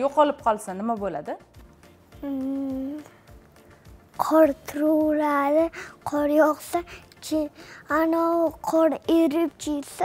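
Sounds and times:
faint music with low beat: 0.0s - 10.0s
boy humming hmm: 2.2s - 3.3s.

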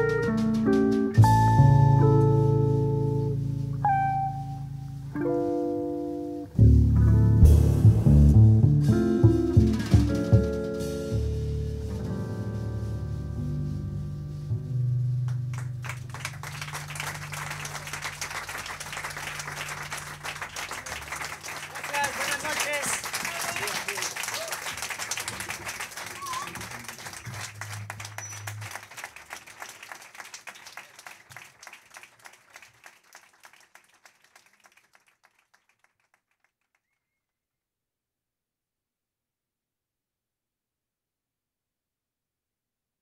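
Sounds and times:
audience applauding: 15.3s - 36.9s.

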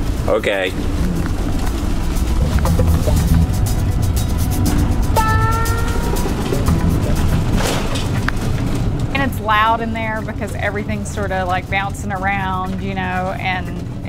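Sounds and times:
low road rumble: 0.0s - 14.0s
trailer contents rattling: 0.0s - 14.0s.

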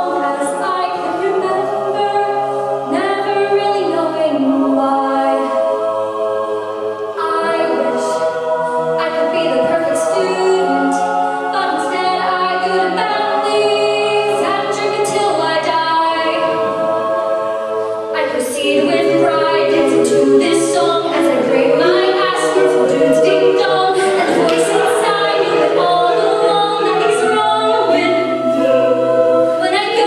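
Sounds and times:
group backing vocals: 0.0s - 30.0s.

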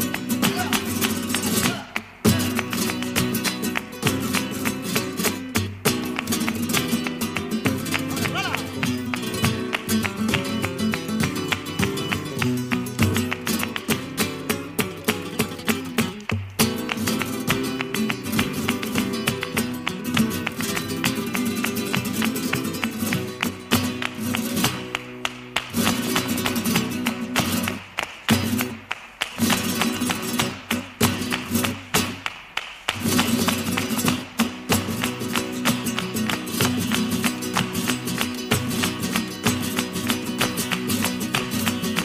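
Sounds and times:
flamenco guitar playing: 0.0s - 42.0s.

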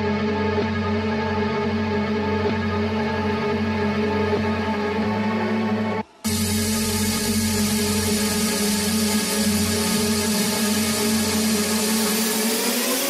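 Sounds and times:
held low synth notes: 0.0s - 13.0s
pulsing bass: 0.0s - 13.0s
distorted synth noise: 4.5s - 13.0s
rising synth sweep: 4.7s - 13.0s.

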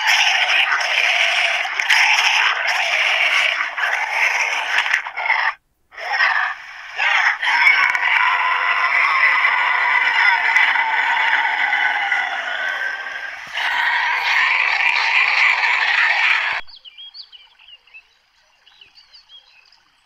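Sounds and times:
frogs calling: 0.0s - 18.2s
faint bird chirps: 16.6s - 20.0s.

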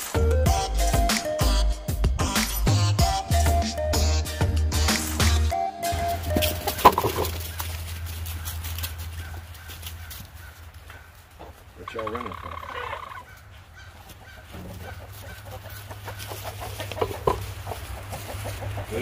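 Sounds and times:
chickens clucking: 4.8s - 19.0s
chicken squawking alarm call: 5.8s - 11.2s, 11.8s - 19.0s.

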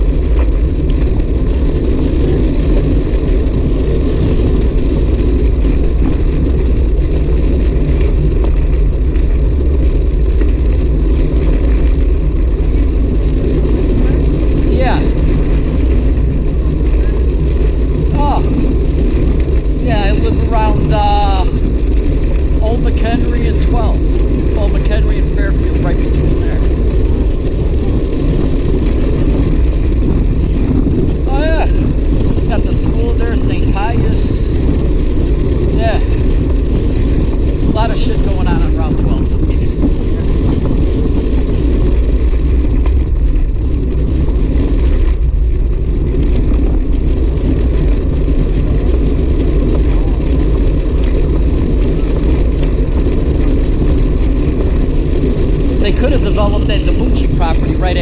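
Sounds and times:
bike tyres rolling on asphalt: 0.0s - 58.0s
wind on microphone: 0.0s - 58.0s.

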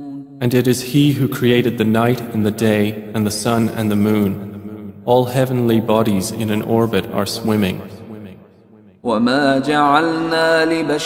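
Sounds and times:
person chanting melodically: 0.0s - 8.4s, 9.0s - 11.0s.

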